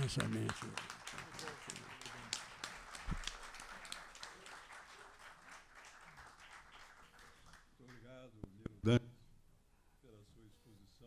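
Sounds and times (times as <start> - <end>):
many hands clapping: 0.0 - 8.1.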